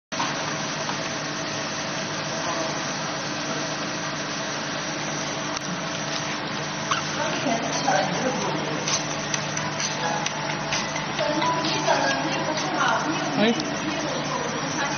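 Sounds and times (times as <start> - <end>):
laser marking machine humming: 0.2 - 14.9.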